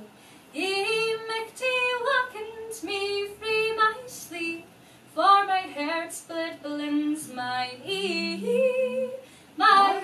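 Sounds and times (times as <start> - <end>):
woman singing unaccompanied: 0.6 - 10.0.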